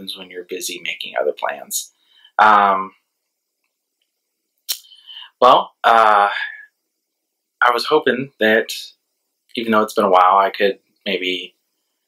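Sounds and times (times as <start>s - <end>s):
mouth click: 4.7s - 5.0s.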